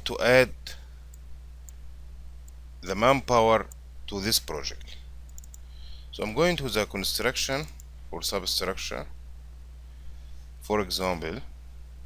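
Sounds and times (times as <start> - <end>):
man talking: 0.0 - 0.8, 2.8 - 5.0, 6.2 - 9.1, 10.6 - 11.5
low electrical hum: 0.0 - 12.0
computer mouse clicks: 5.3 - 5.6.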